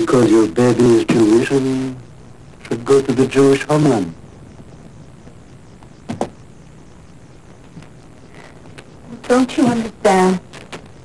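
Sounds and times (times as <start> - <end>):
faint background hiss: 0.0 - 11.0
person speaking: 9.0 - 10.5.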